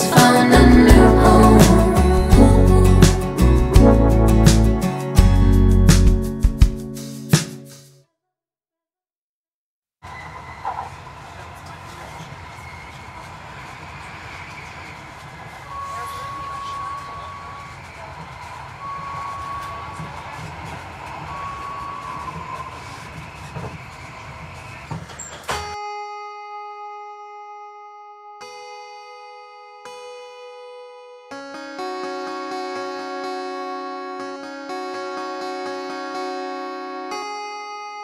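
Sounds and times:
indistinct voices: 0:00.0 - 0:04.2
plucked string notes: 0:00.0 - 0:06.9, 0:26.4 - 0:38.0.

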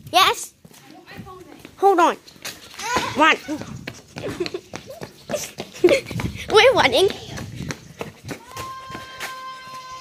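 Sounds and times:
running footsteps on barn floor: 0:00.4 - 0:10.0.

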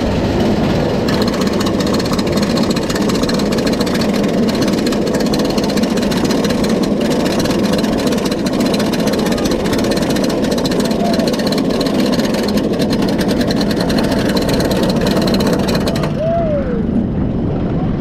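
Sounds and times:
roller coaster chain lift rattling: 0:00.0 - 0:16.3.

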